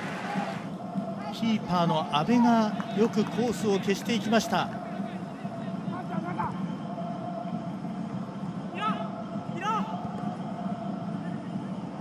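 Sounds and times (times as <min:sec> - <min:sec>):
players shouting: 0:00.0 - 0:07.0
stadium hum: 0:00.0 - 0:12.0.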